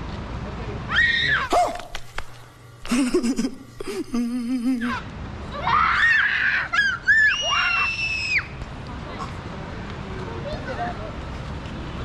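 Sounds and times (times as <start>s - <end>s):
children shrieking at play: 0.9s - 1.8s, 4.8s - 8.6s.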